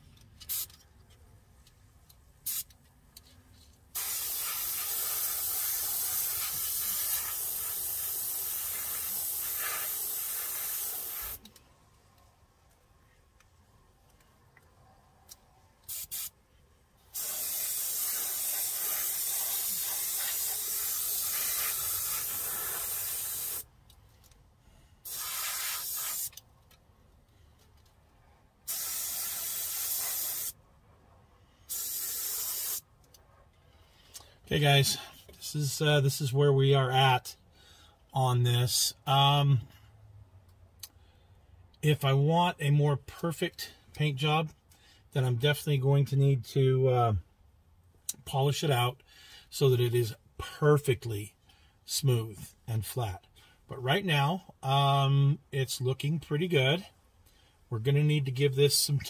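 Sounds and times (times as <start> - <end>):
airbrush hissing: 4.0 - 11.4, 15.9 - 16.3, 17.1 - 23.6, 25.0 - 26.4, 28.7 - 30.6, 31.6 - 32.8.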